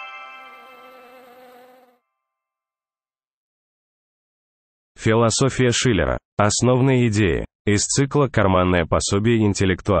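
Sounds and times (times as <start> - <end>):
cartoon bee buzzing: 0.4 - 2.0.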